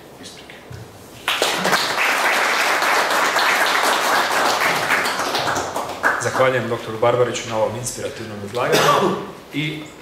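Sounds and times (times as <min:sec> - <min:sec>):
audience applauding: 0:01.2 - 0:06.6.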